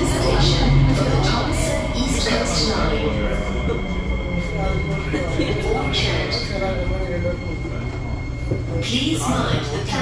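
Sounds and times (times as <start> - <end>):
recorded announcement: 0.0 - 10.0
train rumble with faint whine: 0.0 - 10.0.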